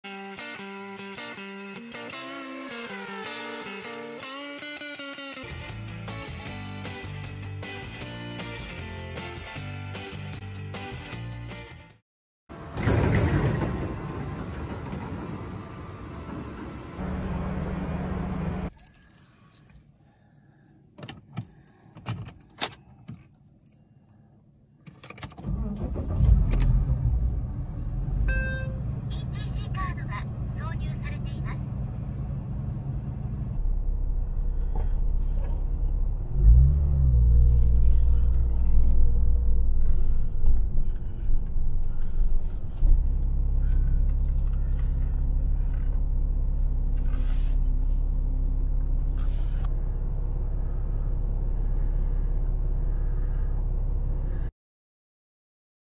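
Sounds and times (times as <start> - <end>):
car engine running: 26.0 - 54.4.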